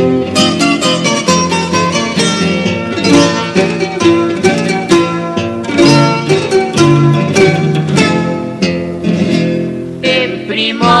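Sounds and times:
plucked string ensemble playing: 0:00.0 - 0:11.0.

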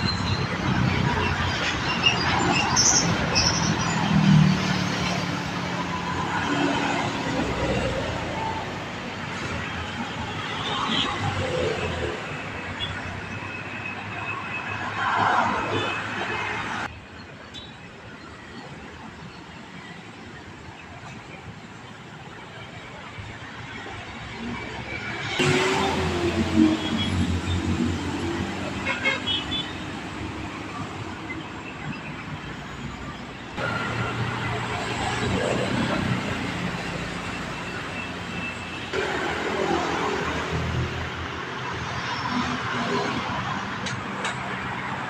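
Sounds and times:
steady traffic noise: 0:00.0 - 0:45.0.

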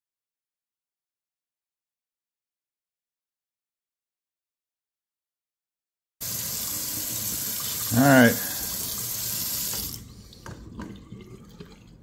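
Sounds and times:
faucet running into steel sink: 0:06.2 - 0:12.0.

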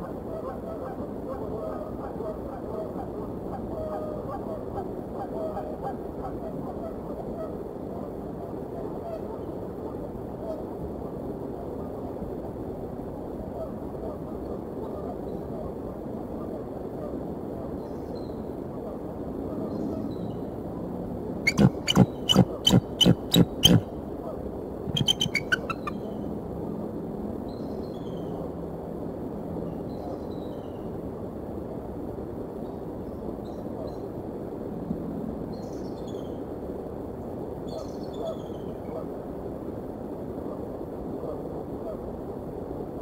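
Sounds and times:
steady background hiss: 0:00.0 - 0:43.0
small birds chirping: 0:21.5 - 0:23.8, 0:24.9 - 0:26.1
eagle calling: 0:21.5 - 0:23.9, 0:24.9 - 0:26.1.

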